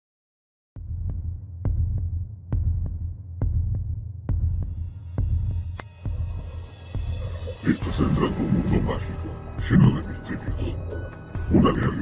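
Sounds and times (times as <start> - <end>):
heartbeat double thump: 0.8 - 6.2.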